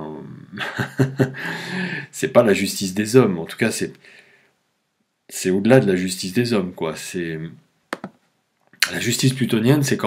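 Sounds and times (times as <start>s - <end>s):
man talking: 0.0s - 0.6s, 2.0s - 4.0s, 5.3s - 7.6s, 8.8s - 10.0s.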